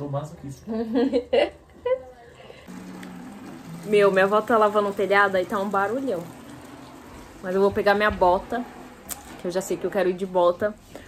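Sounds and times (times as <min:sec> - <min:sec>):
water rushing hiss: 0:02.7 - 0:11.0.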